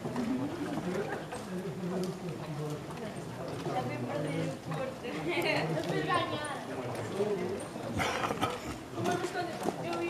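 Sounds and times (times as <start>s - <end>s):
footsteps on cobblestones: 0.0s - 10.0s.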